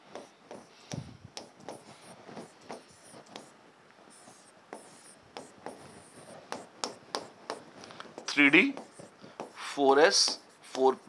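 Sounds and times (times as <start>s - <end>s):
pen scratching and tapping on screen: 0.0s - 10.9s.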